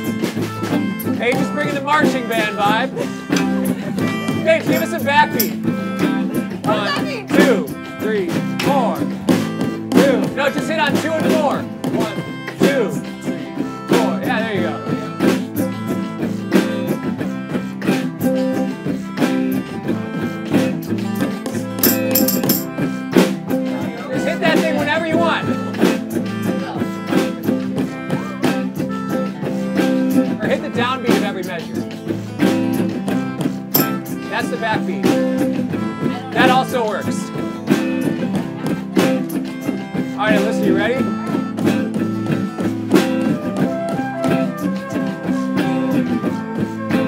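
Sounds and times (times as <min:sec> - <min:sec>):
drum backbeat: 0:00.0 - 0:47.0
guitars strumming: 0:00.0 - 0:47.0
melodica melody: 0:00.0 - 0:47.0.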